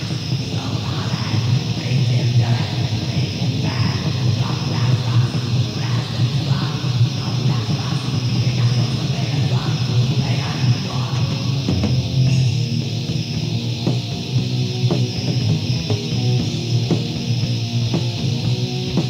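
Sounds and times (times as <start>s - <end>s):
distorted black metal band: 0.0s - 19.0s.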